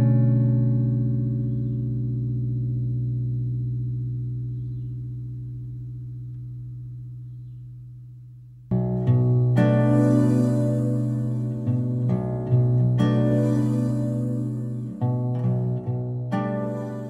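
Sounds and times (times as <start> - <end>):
held guitar chord ringing: 0.0 - 8.0, 8.7 - 17.0.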